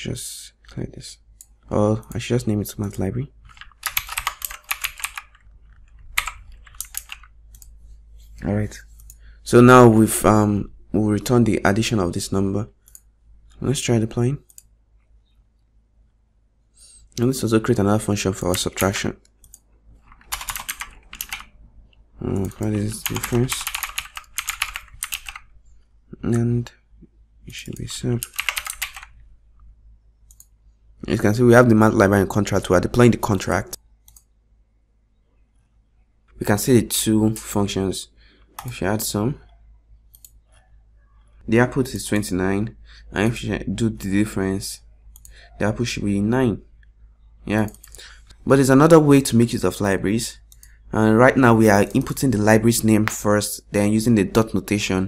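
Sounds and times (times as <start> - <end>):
low electrical hum: 0.0 - 55.0
computer keyboard keystrokes: 3.4 - 7.7, 18.5 - 21.5, 22.4 - 25.5, 27.8 - 29.1.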